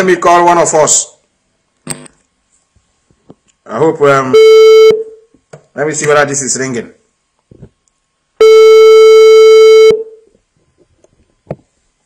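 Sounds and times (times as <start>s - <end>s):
telephone ringback tone: 8.4s - 10.1s.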